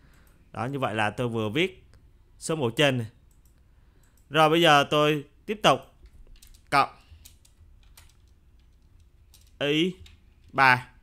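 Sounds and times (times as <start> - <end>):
faint keyboard keystrokes: 6.0 - 10.6.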